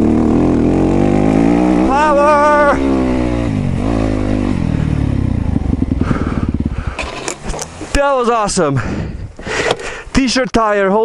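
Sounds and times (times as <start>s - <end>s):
dirt bike engine revving and idling: 0.0s - 8.9s.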